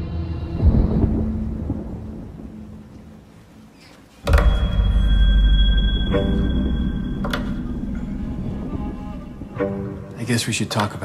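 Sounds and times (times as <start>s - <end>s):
heavy low boom: 0.5s - 3.0s
sustained low drone: 4.3s - 10.3s.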